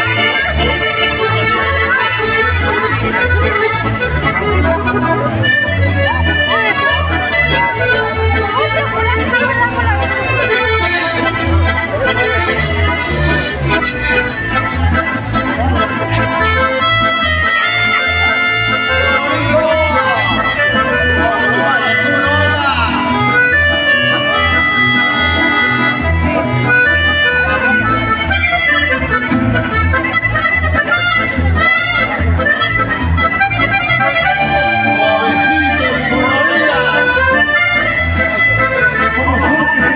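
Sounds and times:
accordions playing melody: 0.0s - 39.9s
guitars: 0.0s - 39.9s.

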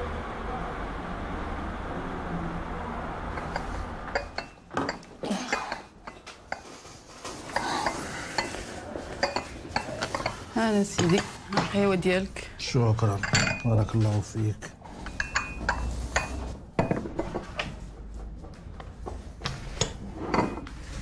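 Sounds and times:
teacups clinking on a tray: 13.1s - 14.0s.

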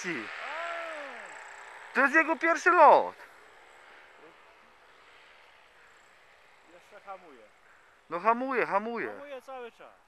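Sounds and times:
distant paramotor engine drone: 0.0s - 10.0s.

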